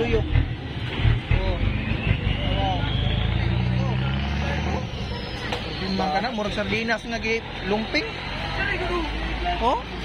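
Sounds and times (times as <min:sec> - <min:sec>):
people talking: 0:01.3 - 0:10.0.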